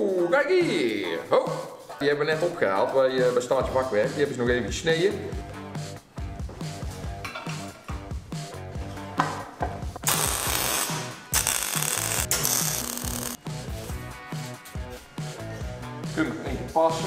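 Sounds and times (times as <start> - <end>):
background music with steady beat: 0.0 - 17.0
arc welding crackle: 10.0 - 13.4.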